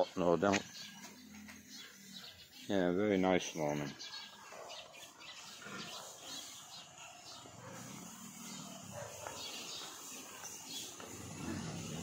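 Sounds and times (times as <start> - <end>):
pigs grunting: 4.5 - 12.0.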